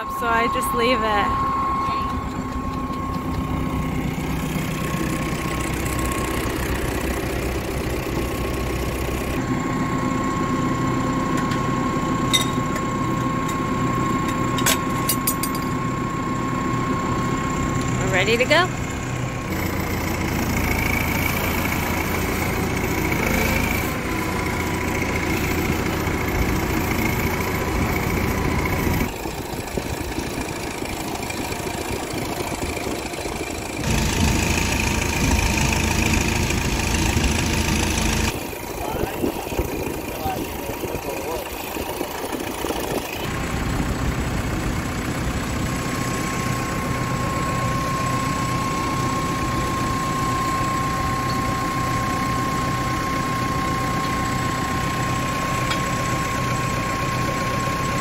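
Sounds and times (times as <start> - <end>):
thin steady whine: 0.0 - 58.0
tractor engine running: 0.0 - 58.0.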